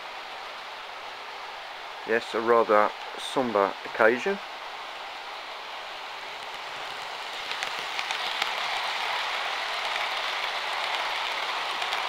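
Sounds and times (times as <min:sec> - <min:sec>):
model train wheels whirring: 0:02.2 - 0:12.0.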